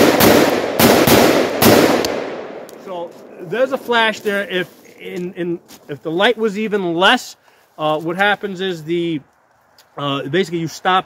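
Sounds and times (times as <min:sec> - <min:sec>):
gunshots echoing: 0:00.0 - 0:04.1.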